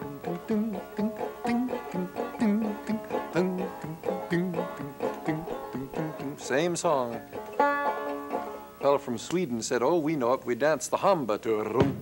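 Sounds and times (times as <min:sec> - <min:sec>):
banjo finger-picked melody: 0:00.0 - 0:10.1.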